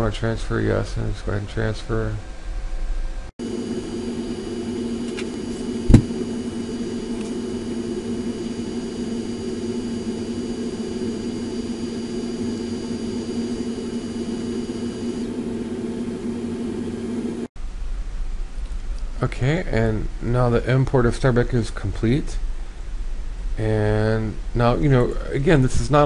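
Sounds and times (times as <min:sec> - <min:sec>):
steady whirring hum: 0:00.0 - 0:26.0.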